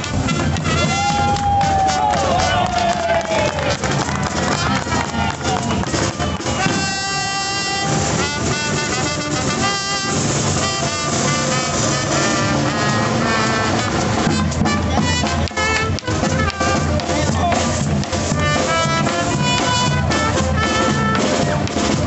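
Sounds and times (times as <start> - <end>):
brass band playing lively tune: 0.0 - 22.0.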